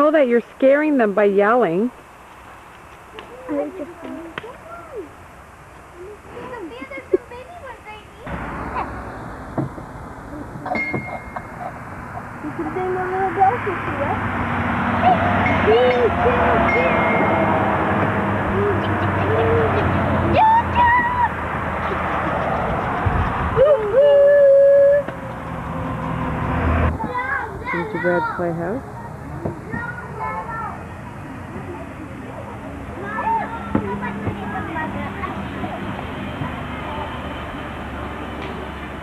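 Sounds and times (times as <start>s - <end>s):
train ride mechanical hum: 1.9s - 39.0s
children's voices: 3.2s - 5.2s, 5.9s - 9.1s, 10.2s - 10.8s, 12.3s - 14.3s, 14.9s - 23.0s, 26.9s - 38.8s
loud steady tone: 15.2s - 20.4s.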